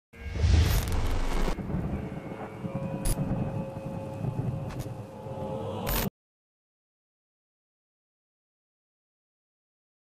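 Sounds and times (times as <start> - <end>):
low rumble: 0.2 - 6.1.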